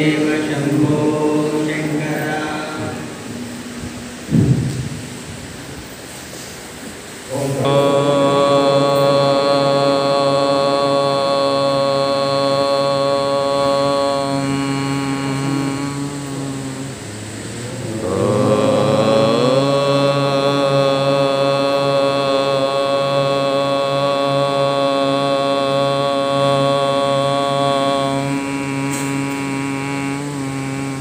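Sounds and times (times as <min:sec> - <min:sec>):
man chanting into a microphone: 0:00.0 - 0:03.8, 0:07.3 - 0:31.0.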